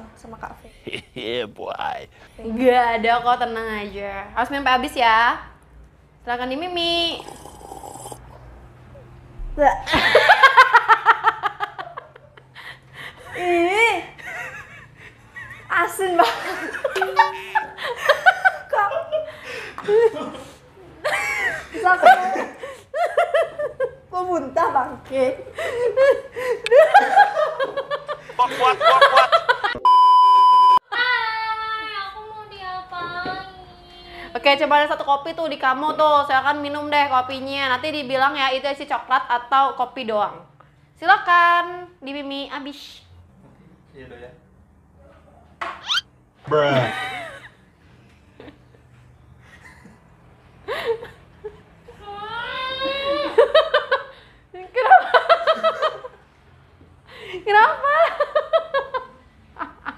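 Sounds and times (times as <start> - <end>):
women laughing: 9.9 - 24.0, 25.6 - 29.8, 46.9 - 47.6, 52.3 - 56.2, 57.4 - 59.9
woman's high rising cry: 52.0 - 53.6.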